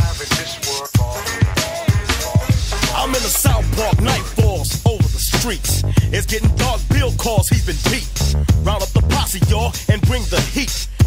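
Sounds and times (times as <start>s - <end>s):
hip-hop drum beat: 0.0s - 11.0s
short vocal phrases: 2.0s - 10.8s.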